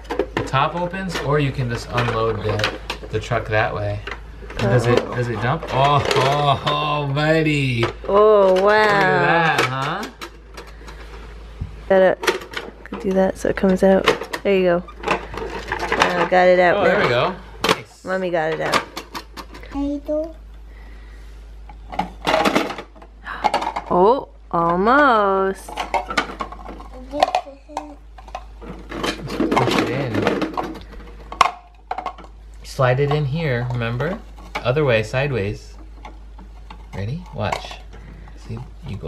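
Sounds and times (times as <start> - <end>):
low room noise: 0.0 - 39.0.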